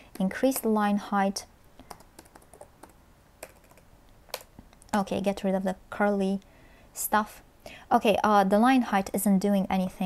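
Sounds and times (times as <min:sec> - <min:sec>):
keyboard keystrokes: 0:01.8 - 0:04.5.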